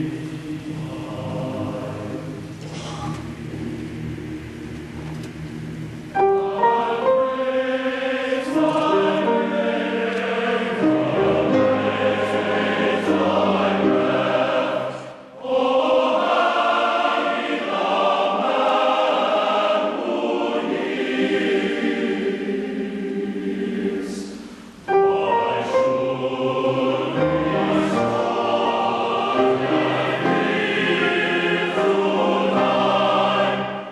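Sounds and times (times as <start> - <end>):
men's choir singing in harmony: 0.0 - 33.9.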